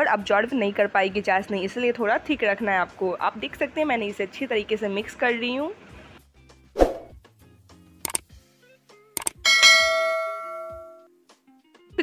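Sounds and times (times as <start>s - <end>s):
bright bell ding: 9.5s - 11.0s.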